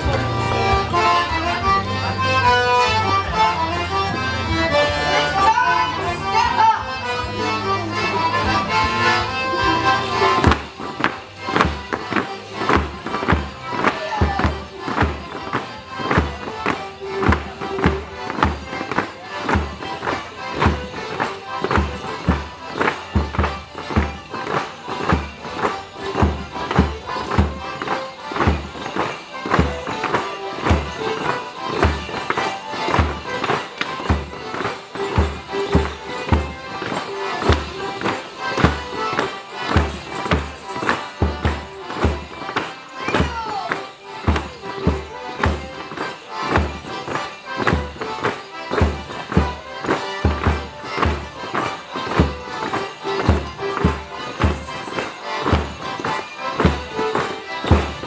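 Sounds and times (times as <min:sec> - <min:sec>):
live folk tune: 0:00.0 - 0:58.0.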